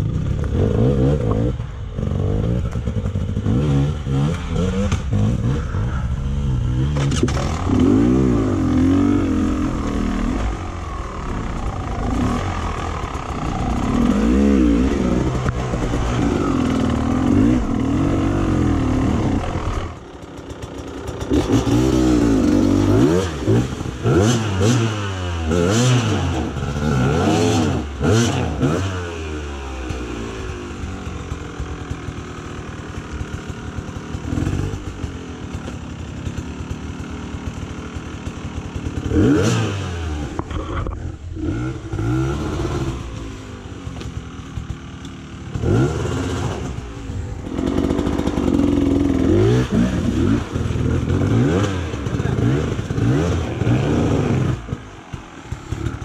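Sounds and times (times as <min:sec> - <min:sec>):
dirt bike engines revving: 0:00.0 - 0:56.0.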